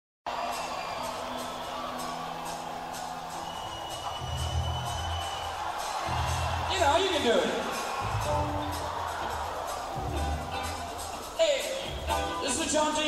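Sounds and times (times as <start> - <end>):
audience cheering: 0.3 - 13.0
deep bass notes: 8.0 - 8.8, 11.9 - 12.4.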